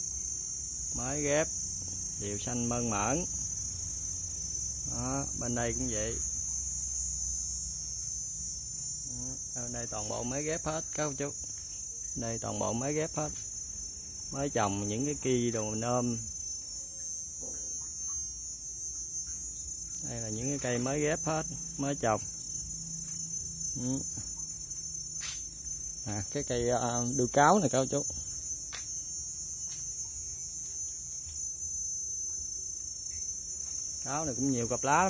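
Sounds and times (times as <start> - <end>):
insects droning: 0.0 - 35.0.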